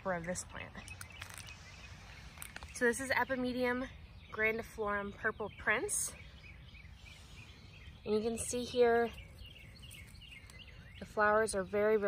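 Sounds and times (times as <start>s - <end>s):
outdoor background hiss: 0.0s - 12.0s
songbird chirps: 0.0s - 12.0s.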